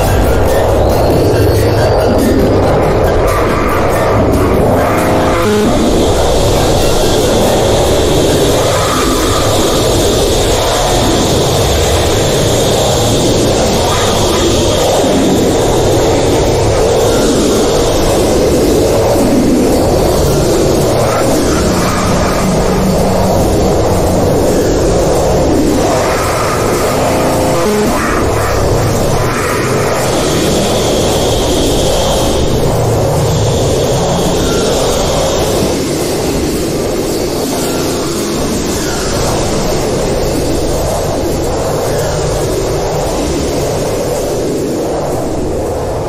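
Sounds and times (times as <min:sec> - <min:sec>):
harsh distorted noise music: 0:00.0 - 0:46.0.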